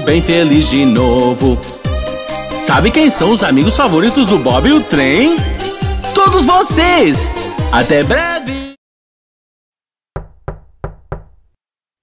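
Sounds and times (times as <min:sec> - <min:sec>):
knocking on a door: 0:10.2 - 0:11.6.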